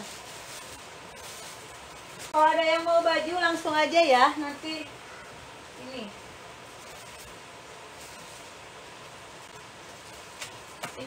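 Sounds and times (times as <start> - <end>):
faint room noise hiss: 0.0 - 11.0.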